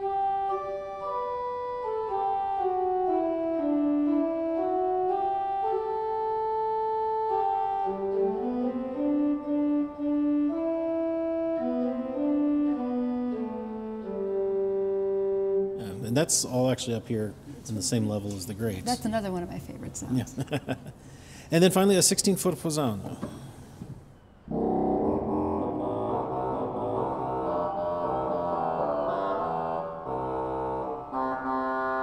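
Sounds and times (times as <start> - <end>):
pipe organ held notes: 0.0 - 17.0, 24.3 - 32.0.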